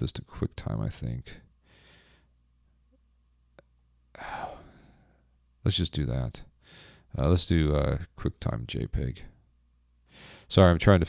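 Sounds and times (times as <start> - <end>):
man sighing: 4.2 - 5.1.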